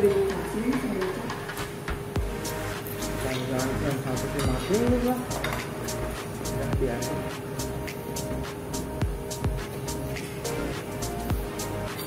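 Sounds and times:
soft background music: 0.0s - 12.0s
low wavering hum: 2.2s - 12.0s.

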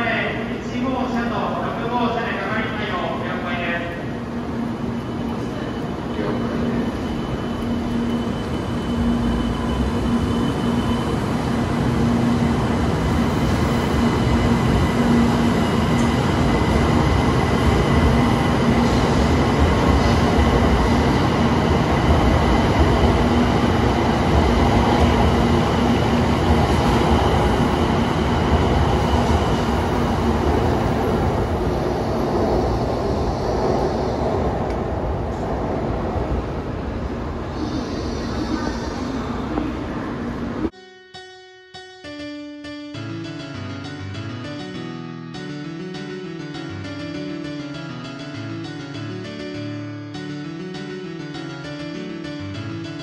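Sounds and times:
train departing and accelerating: 0.0s - 53.0s.

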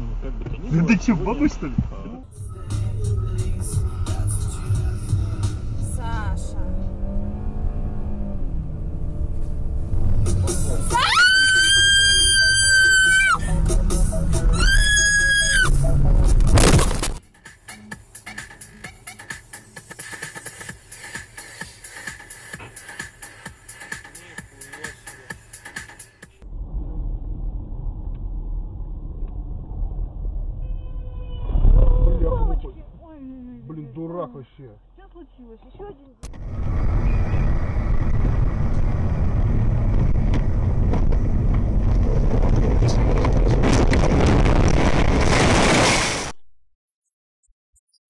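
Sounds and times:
road and engine rumble: 0.0s - 46.4s
high-pitched screams: 10.9s - 13.5s, 14.5s - 15.7s.

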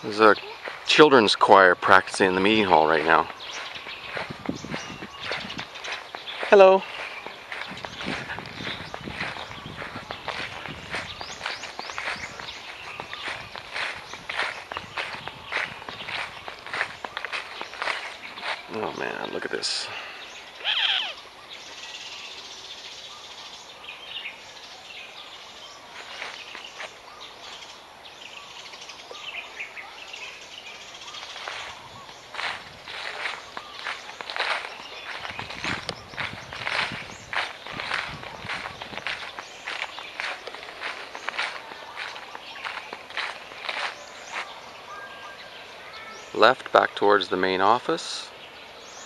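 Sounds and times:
footsteps crunching through dry leaves: 0.0s - 21.9s, 25.0s - 27.7s, 28.7s - 47.4s
bird chirps: 0.0s - 49.0s.

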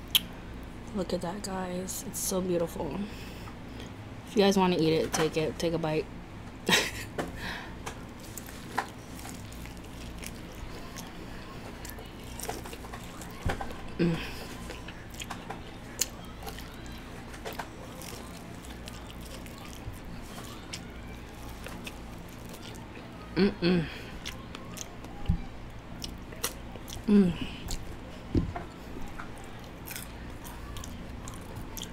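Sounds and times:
wet chewing and mouth sounds: 7.8s - 31.9s.

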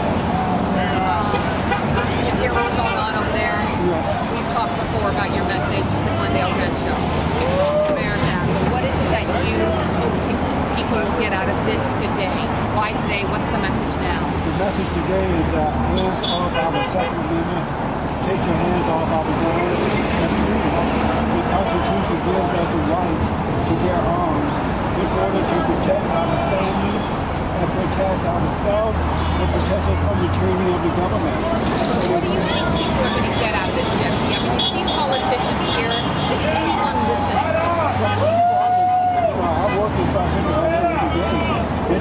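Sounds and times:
road traffic: 0.0s - 42.0s
people talking: 0.7s - 38.3s.

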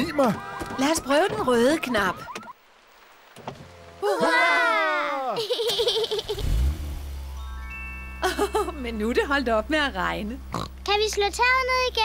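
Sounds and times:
cartoon car engine hum: 3.7s - 12.0s
glockenspiel chime: 7.3s - 9.4s.

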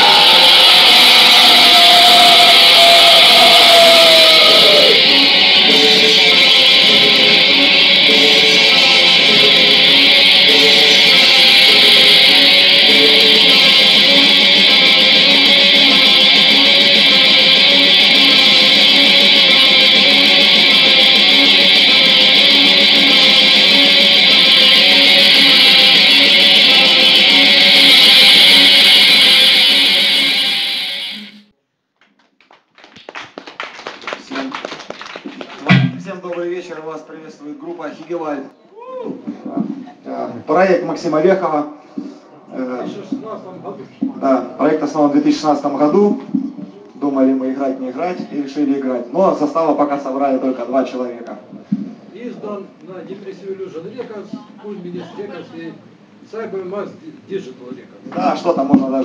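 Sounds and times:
black metal band playing live: 0.0s - 31.4s.

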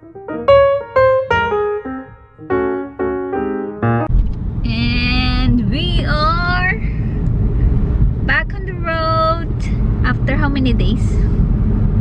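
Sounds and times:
road and engine noise in car: 4.1s - 12.0s
woman talking: 4.7s - 6.9s, 8.3s - 11.3s.

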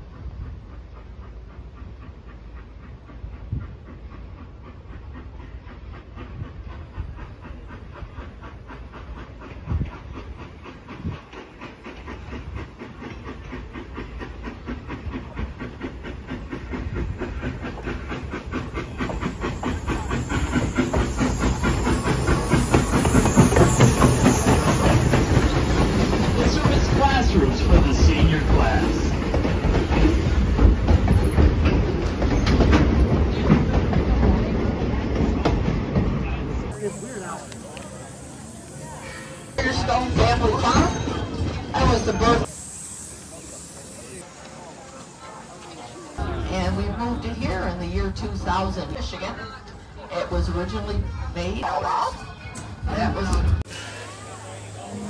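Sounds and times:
steam hissing: 0.0s - 52.1s, 53.0s - 55.0s
steam locomotive passing: 0.0s - 55.0s.

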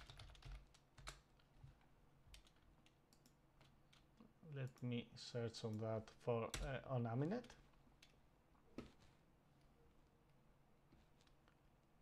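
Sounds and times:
computer keyboard typing: 0.0s - 1.3s, 2.3s - 4.0s.

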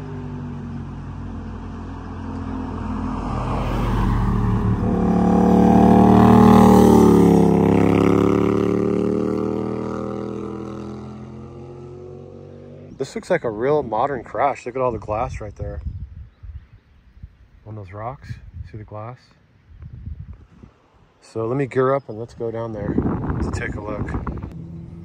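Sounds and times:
car passing by: 0.0s - 12.9s
motorcycle passing by: 0.0s - 13.0s, 23.0s - 25.0s.

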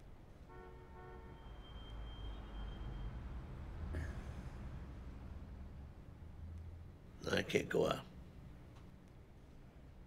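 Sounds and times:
faint car horn: 0.5s - 3.2s.

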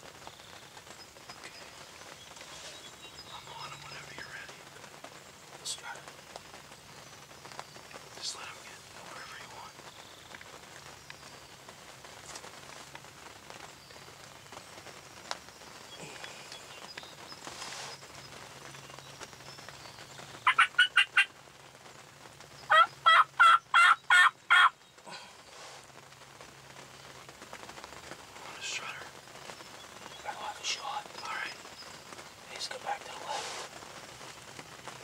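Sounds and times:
wild turkey yelping: 20.4s - 21.3s, 22.7s - 25.8s.

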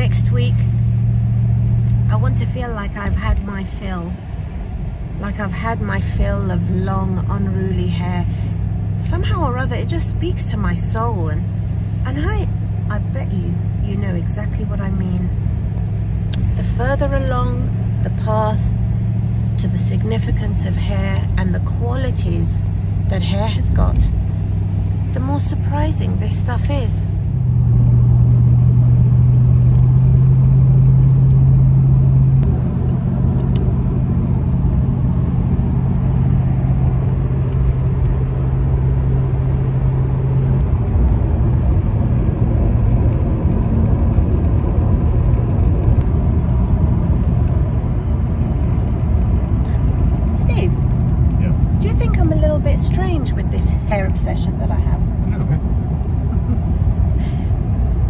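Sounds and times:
car cabin road rumble: 0.0s - 58.0s.

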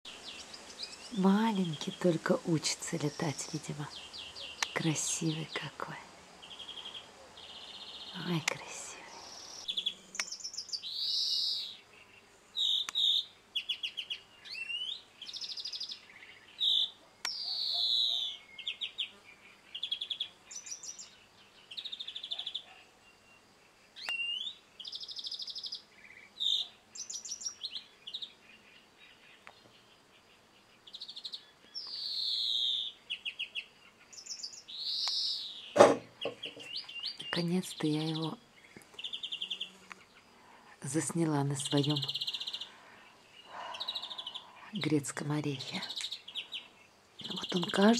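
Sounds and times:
greenfinch singing: 0.1s - 23.4s, 24.0s - 30.1s, 30.8s - 47.9s
sharp knock: 35.8s - 36.6s.

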